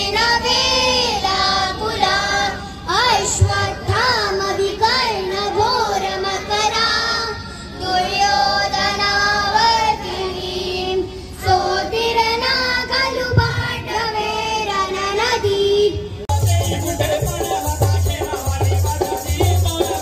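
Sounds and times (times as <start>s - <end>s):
children singing in unison: 0.0s - 15.9s.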